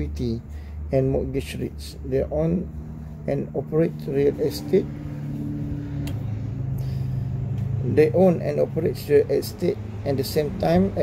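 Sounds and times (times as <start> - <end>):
person speaking: 0.0 - 5.6
low motor hum: 0.0 - 11.0.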